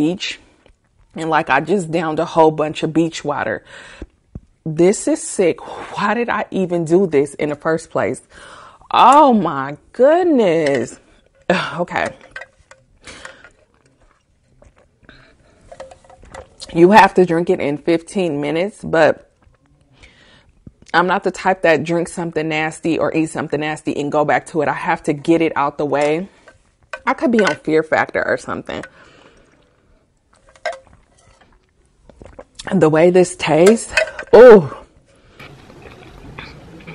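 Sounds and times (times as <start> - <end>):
short breath: 3.7 - 4.1, 8.3 - 8.9, 19.9 - 20.6
person swallowing: 30.4 - 32.7, 35.4 - 36.9.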